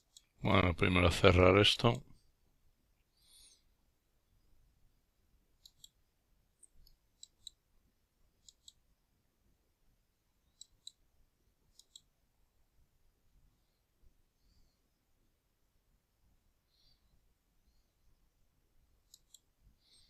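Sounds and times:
computer mouse clicks: 0.0s - 0.4s, 5.6s - 6.0s, 6.6s - 7.6s, 8.4s - 8.9s, 10.5s - 11.0s, 11.7s - 12.1s, 19.0s - 19.5s.

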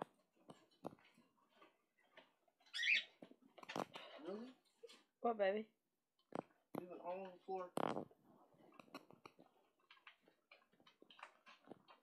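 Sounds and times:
small pet squeaky call: 2.7s - 3.1s.

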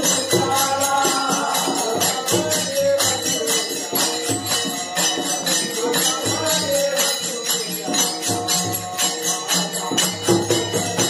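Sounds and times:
hand cymbals clashing: 0.0s - 11.0s
men chanting in chorus: 0.0s - 11.0s.

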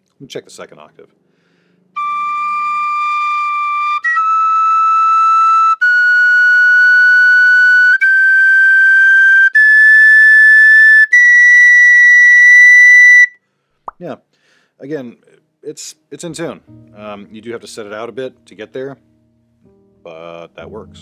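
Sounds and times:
tin whistle playing rising scale: 2.0s - 13.4s.

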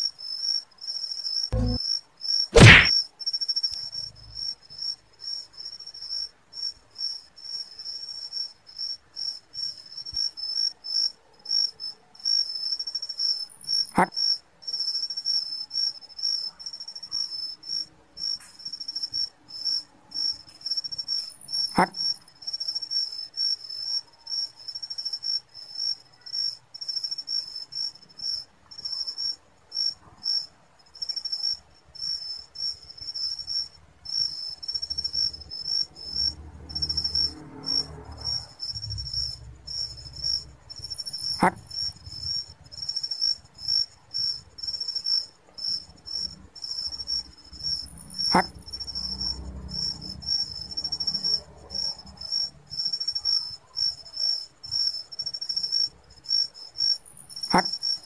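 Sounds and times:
night insects trilling: 0.0s - 58.0s.

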